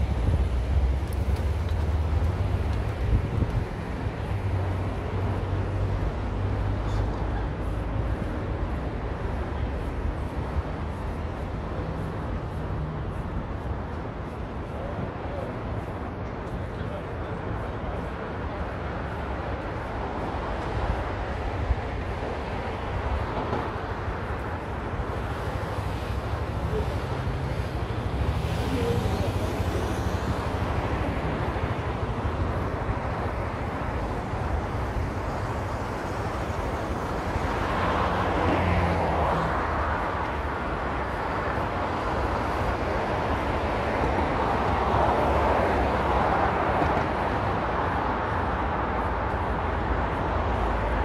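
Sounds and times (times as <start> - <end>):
cars going by: 0.0 - 51.0.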